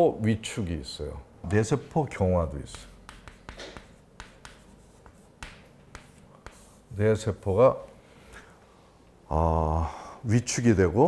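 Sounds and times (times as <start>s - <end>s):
chalk tapping on board: 2.6s - 6.9s
chalk writing on chalkboard: 2.6s - 6.9s.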